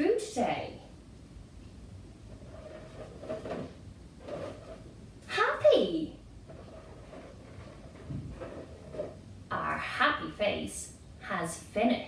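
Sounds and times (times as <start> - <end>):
balloon rubbing and rustling: 2.3 - 5.0, 6.4 - 9.3.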